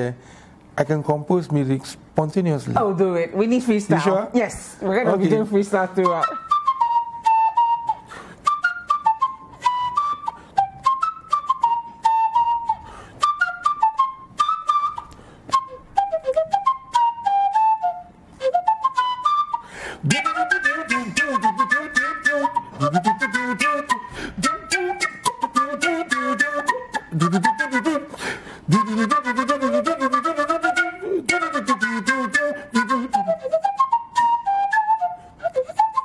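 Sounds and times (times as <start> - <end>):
wooden flute melody: 5.1 - 36.0.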